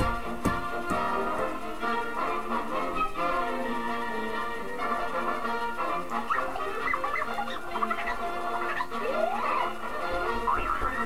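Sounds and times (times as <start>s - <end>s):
orchestral film music: 0.0s - 11.0s.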